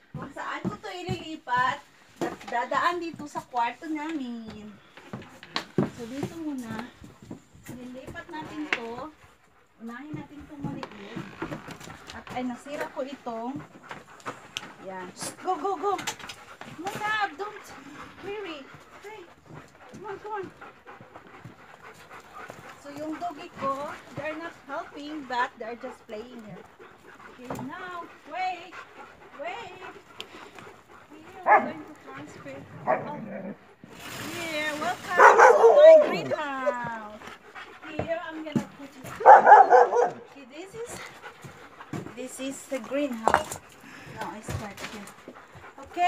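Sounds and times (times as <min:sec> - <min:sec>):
dogs panting: 0:00.0 - 0:46.0
dogs barking: 0:30.6 - 0:33.6, 0:35.0 - 0:40.3
dog whining: 0:35.2 - 0:36.5
light knocks and scuffs: 0:36.6 - 0:40.2.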